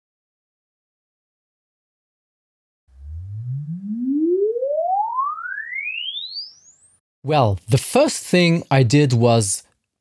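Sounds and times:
sine sweep test tone rising: 0:02.9 - 0:07.0.

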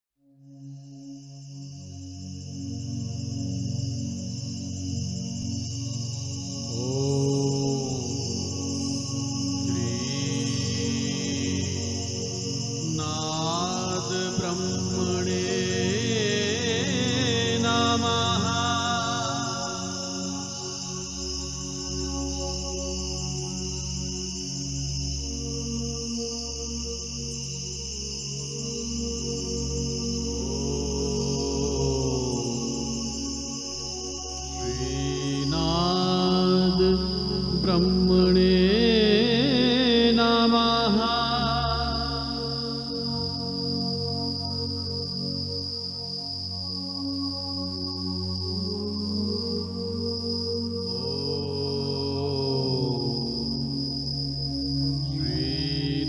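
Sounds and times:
musical drone: 0:01.9 - 0:56.0
man chanting: 0:06.6 - 0:20.8, 0:30.3 - 0:33.3, 0:34.5 - 0:43.2, 0:50.9 - 0:54.0, 0:55.0 - 0:56.0
steady drone: 0:28.3 - 0:44.3.

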